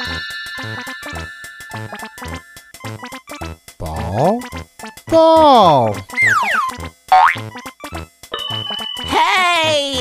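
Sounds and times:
bouncy children's music: 0.0 - 10.0
cartoon pitch-glide whistle: 5.8 - 7.4.

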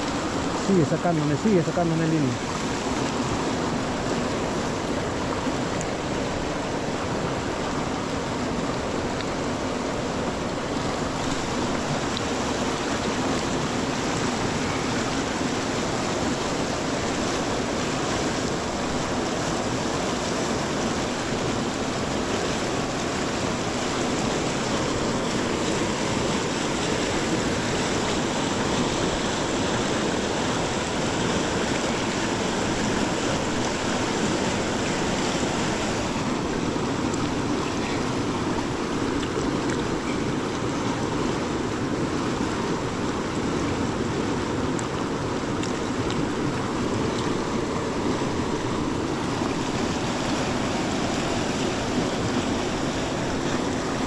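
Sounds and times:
river rushing over rocks: 0.0 - 54.0.

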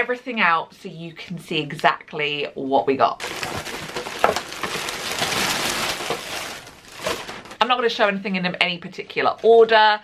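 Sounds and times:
boxes knocking onto bed: 3.2 - 7.5
plastic bag and cellophane rustling: 3.2 - 7.8.

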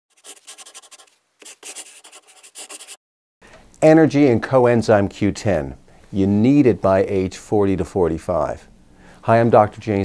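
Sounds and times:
scratchy scribbling strokes: 0.1 - 3.0
man's voice: 9.3 - 10.0.

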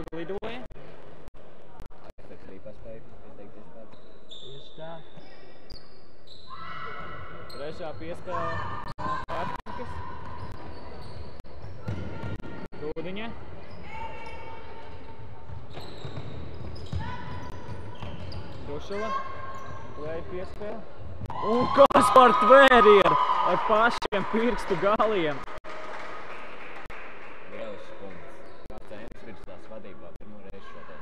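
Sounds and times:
shoes squeaking on hardwood floor: 3.9 - 12.7, 13.6 - 22.0
players calling out: 21.3 - 25.6.

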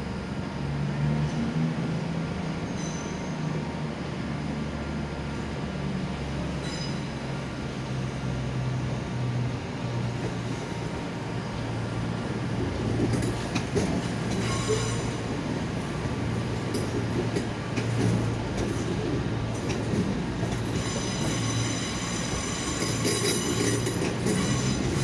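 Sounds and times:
electric train humming: 4.0 - 25.0.

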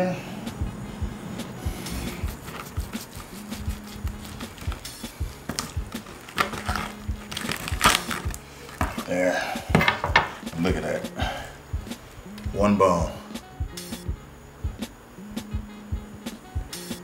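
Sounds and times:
background music with steady beat: 0.0 - 17.0
knife knocking on cutting board: 9.7 - 10.3.

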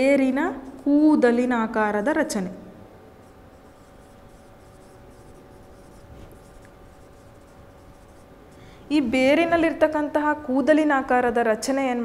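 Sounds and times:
faint steady hum: 0.0 - 12.0
marker pen scratching whiteboard: 3.2 - 10.0.

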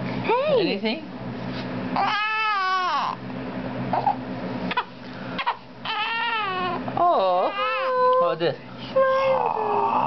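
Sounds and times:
baby crying: 2.0 - 3.2, 3.9 - 8.2.

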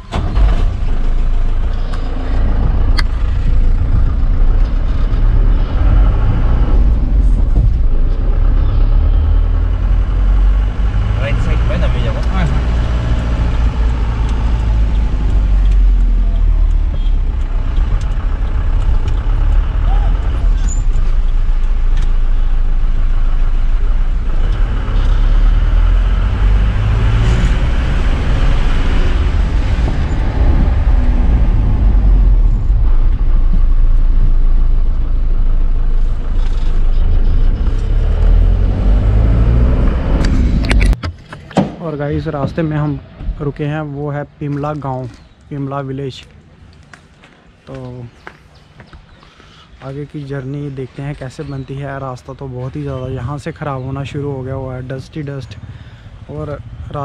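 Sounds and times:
engine and road noise in cabin: 0.0 - 43.6.

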